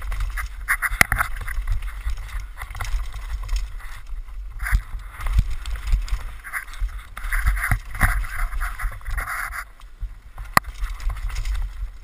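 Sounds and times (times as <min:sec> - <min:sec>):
bike knocking on rocks: 0:00.0 - 0:12.0
bike tyres rushing on trail: 0:00.0 - 0:12.0.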